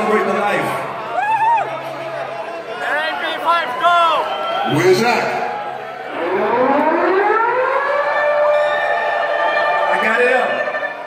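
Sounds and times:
air-raid siren wail: 6.0s - 11.0s.

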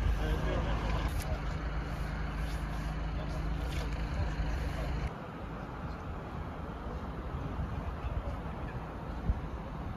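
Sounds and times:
people talking: 0.0s - 1.6s, 2.7s - 5.1s
engine idling: 0.0s - 5.1s.

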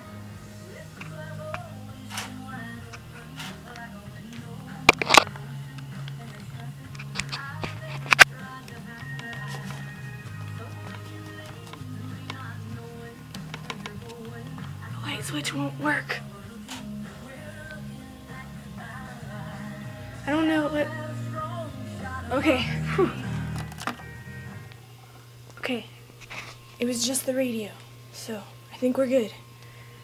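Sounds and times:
music from a radio: 0.0s - 24.9s, 28.6s - 30.0s.

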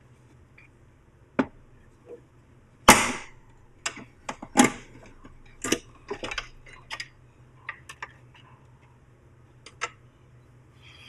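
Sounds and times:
small clicks and knocks: 3.8s - 8.9s, 9.6s - 10.0s.

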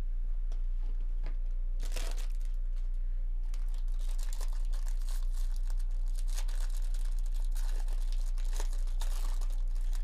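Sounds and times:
steady low hum: 0.0s - 10.0s
foil wrapper tearing and crinkling: 1.8s - 2.6s, 3.5s - 10.0s.

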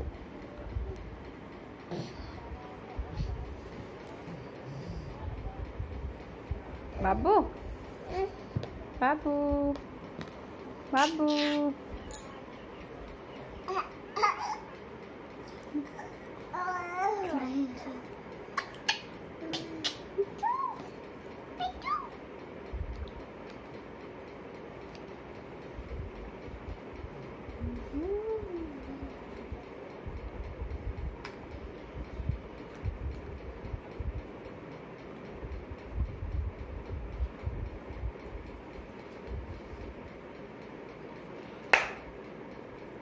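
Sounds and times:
fast high-pitched ticking: 16.2s - 41.5s.

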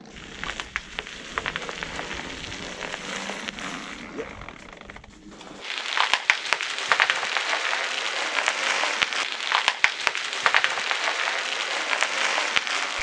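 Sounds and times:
bubble wrap crackling and popping: 0.0s - 13.0s.

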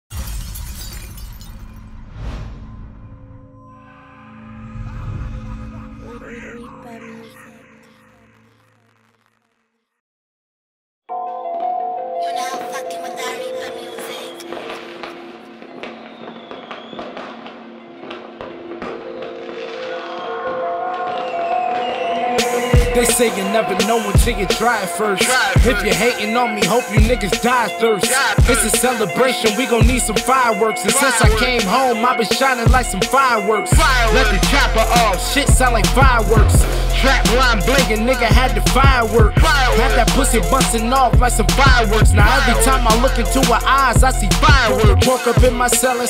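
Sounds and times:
glass shattering: 0.1s - 2.1s
deep low rumble: 1.7s - 6.7s
fireworks popping and crackling: 8.4s - 9.6s, 14.2s - 24.7s.

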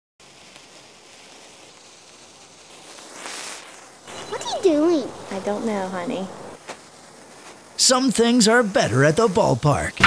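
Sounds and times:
firework spraying sparks: 0.2s - 10.0s.

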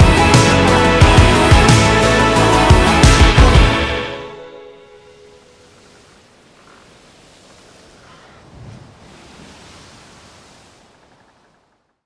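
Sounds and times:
waves on rocky shore: 5.1s - 11.9s.

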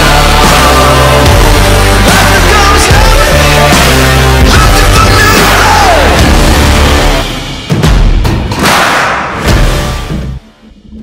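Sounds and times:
rock music: 0.0s - 10.8s.

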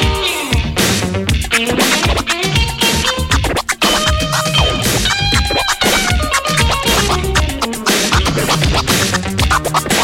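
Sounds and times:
music track with steady beat: 0.0s - 10.0s
turntable scratching: 1.3s - 10.0s.

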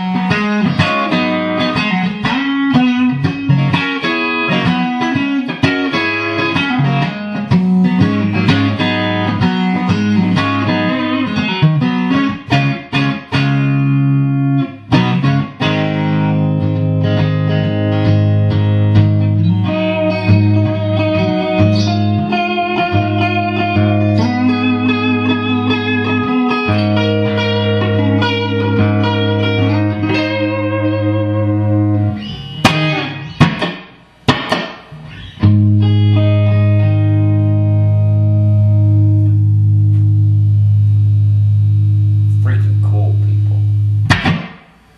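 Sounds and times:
guitar chord ringing out: 0.0s - 33.5s, 34.3s - 44.5s
choppy guitar strums: 0.0s - 44.9s
electric guitar lead lines: 0.0s - 44.9s.

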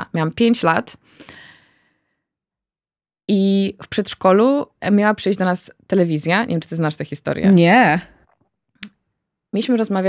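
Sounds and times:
woman breathing softly: 1.0s - 2.3s.

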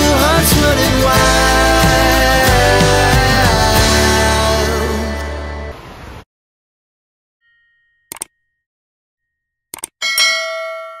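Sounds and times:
double mouse click: 9.7s - 10.0s
notification bell chime: 10.0s - 11.0s.

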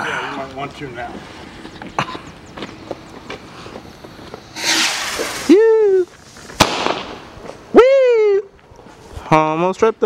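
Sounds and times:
burning fuse crackling: 0.4s - 7.8s
firework launching with hissing rush: 4.4s - 7.4s.

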